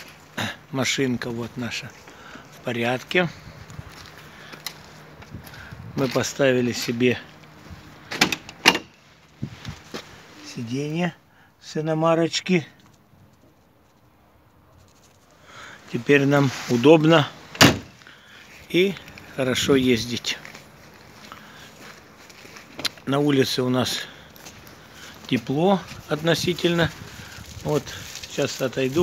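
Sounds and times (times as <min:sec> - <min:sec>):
low steady background noise: 0:00.0 - 0:29.0
car door latch clicks: 0:17.6 - 0:17.9.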